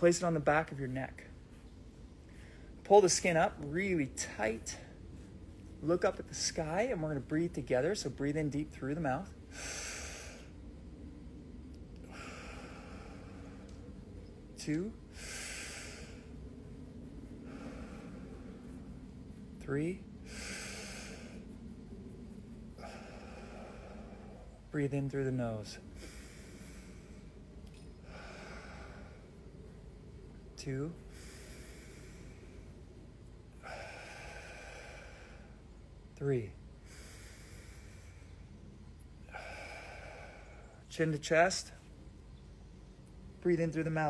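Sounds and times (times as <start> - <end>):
man breathing deeply: 1.5 - 2.8, 9.2 - 42.0.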